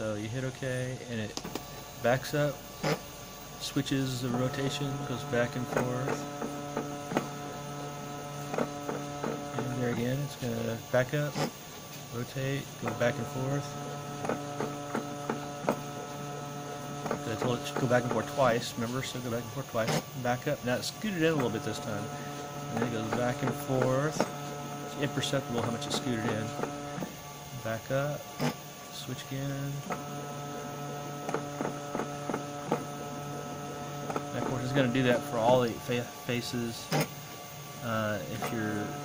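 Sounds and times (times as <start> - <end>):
stepper motors humming: 0.0 - 39.0.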